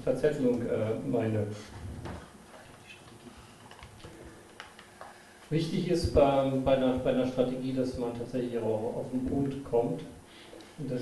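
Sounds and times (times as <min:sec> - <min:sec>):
laptop keyboard typing: 0:03.1 - 0:05.2.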